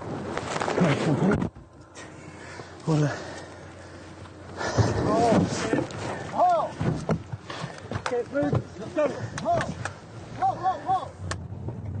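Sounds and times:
movement noise: 0.1s - 10.6s
people shouting: 10.4s - 11.2s.

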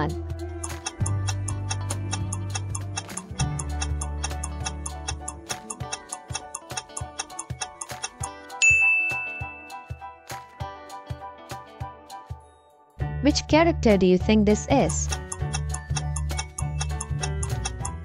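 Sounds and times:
countdown timer ticking: 0.0s - 10.1s, 13.3s - 18.0s
quiz show background music: 0.0s - 18.0s
bright chime: 8.6s - 9.9s.

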